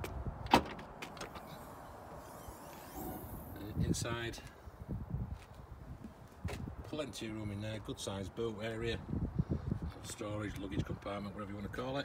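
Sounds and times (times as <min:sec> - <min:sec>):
hatch lifting: 0:01.1 - 0:03.8.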